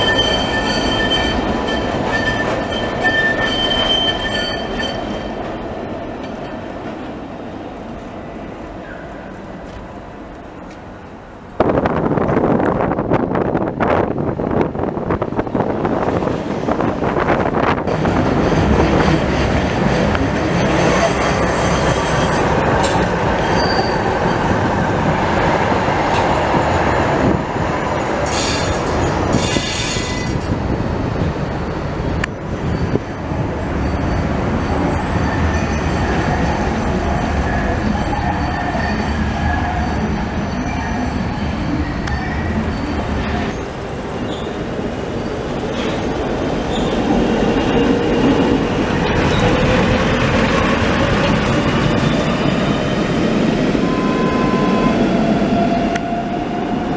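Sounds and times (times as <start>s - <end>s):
tram wheel squeal: 0.0s - 5.6s, 17.9s - 25.0s, 28.0s - 30.6s, 31.2s - 56.9s
rising tram whine: 0.0s - 56.9s
trams rolling on rails: 0.0s - 56.9s.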